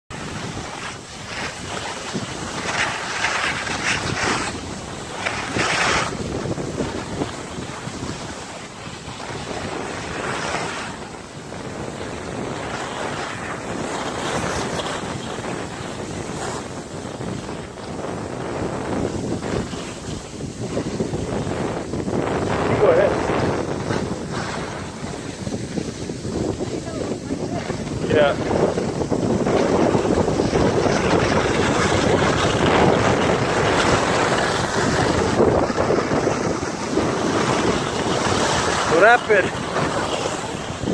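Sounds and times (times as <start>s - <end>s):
skis scraping over snow: 0.1s - 40.9s
wind rushing over microphone: 0.1s - 40.9s.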